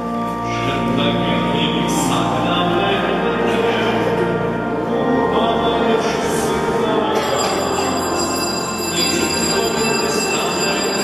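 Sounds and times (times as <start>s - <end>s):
church organ chords: 0.0s - 11.0s.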